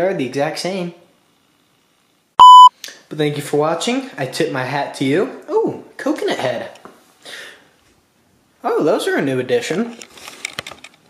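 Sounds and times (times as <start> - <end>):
censor bleep tone: 2.4 - 2.7.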